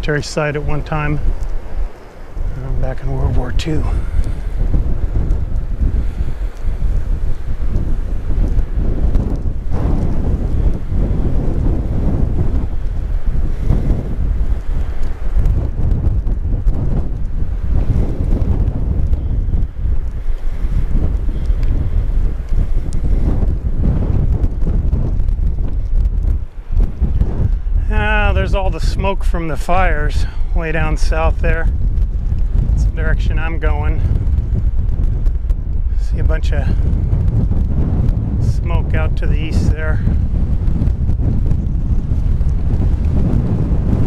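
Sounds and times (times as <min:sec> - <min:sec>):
strong wind buffeting microphone: 0:00.0 - 0:44.0.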